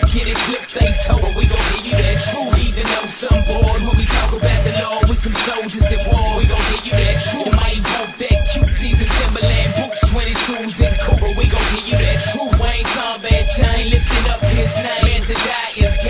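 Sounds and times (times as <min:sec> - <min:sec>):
bass-heavy beat: 0:00.0 - 0:16.0
rapped vocals: 0:00.0 - 0:16.0.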